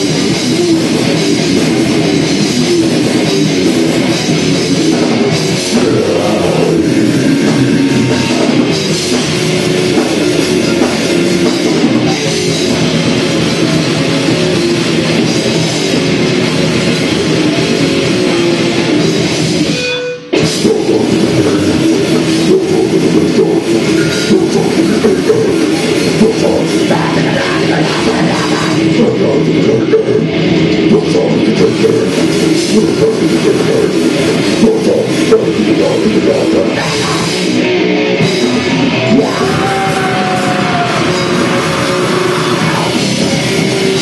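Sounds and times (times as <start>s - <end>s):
heavy metal band playing: 0.0s - 44.0s.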